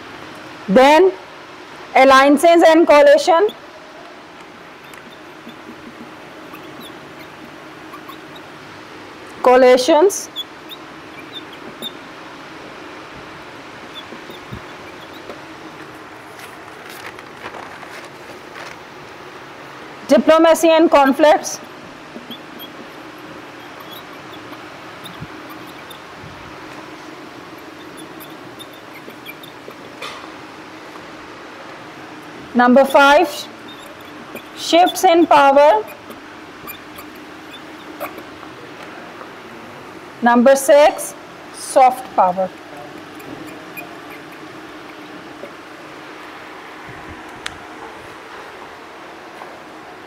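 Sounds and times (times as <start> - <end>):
room hum: 0.0 - 50.0
whiteboard marker squeaking: 4.8 - 8.5, 9.9 - 12.0, 13.9 - 15.9, 20.9 - 30.1, 32.6 - 38.3, 42.3 - 45.6.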